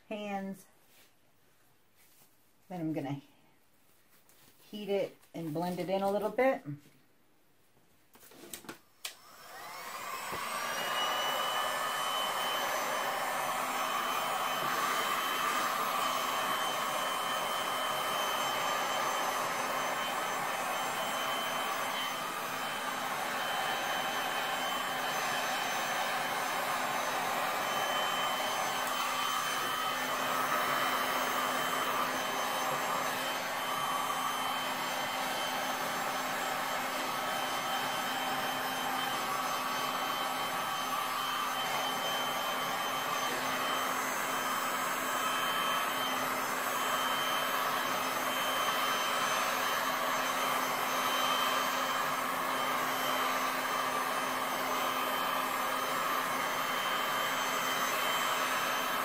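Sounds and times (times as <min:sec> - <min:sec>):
heat gun fan whirring: 0:08.6 - 0:59.0.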